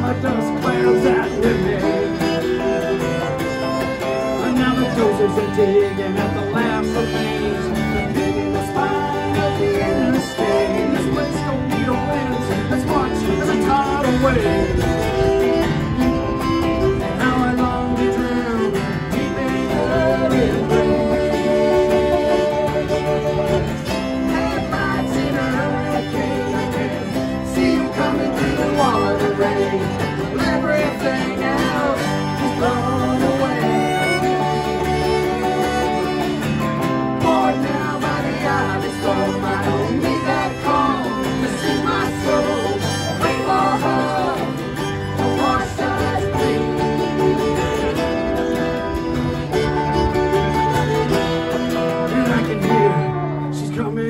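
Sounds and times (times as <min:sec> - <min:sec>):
cello: 0:00.0 - 0:53.7
fiddle melody: 0:00.0 - 0:54.0
strummed acoustic guitar: 0:00.0 - 0:54.0.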